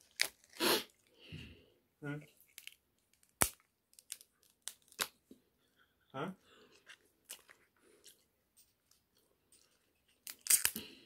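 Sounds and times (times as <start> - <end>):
shellfish shell snapping: 2.5 - 5.1, 10.2 - 10.8
soft tearing: 9.5 - 10.9.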